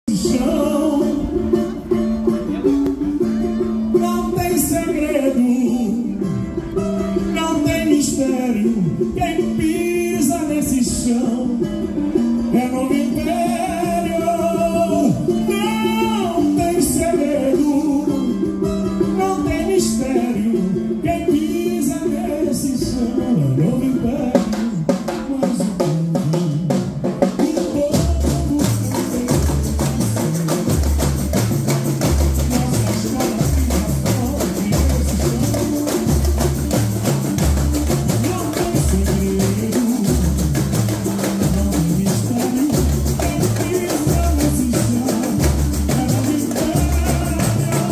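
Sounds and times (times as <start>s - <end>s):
band accompaniment: 0.0s - 47.9s
deep bass drum beats: 0.0s - 47.9s
person singing: 0.0s - 47.9s
strummed cavaquinho: 0.0s - 47.9s
snare and hand percussion: 0.1s - 47.9s.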